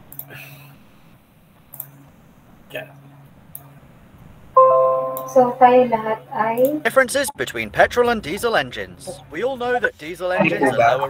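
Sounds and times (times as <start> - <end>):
bell-like musical chord: 4.6 - 6.1
soft click: 5.1 - 5.4.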